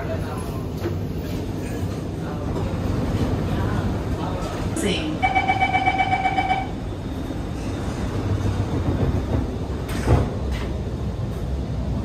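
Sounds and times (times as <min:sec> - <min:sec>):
train car low hum: 0:00.0 - 0:12.0.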